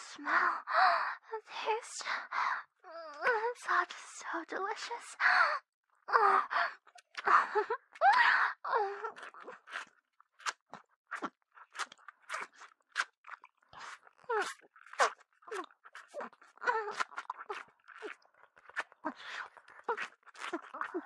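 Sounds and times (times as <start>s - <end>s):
wet mouth sounds: 9.0s - 21.0s.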